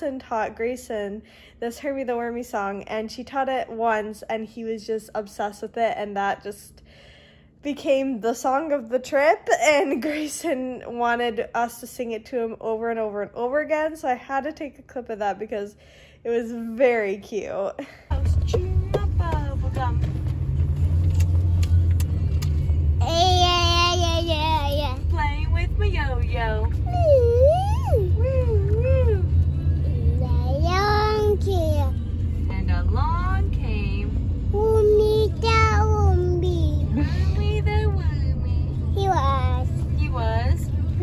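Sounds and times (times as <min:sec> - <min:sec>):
car road rumble: 0:18.1 - 0:41.0
toddler singing: 0:26.9 - 0:29.0, 0:30.2 - 0:32.0.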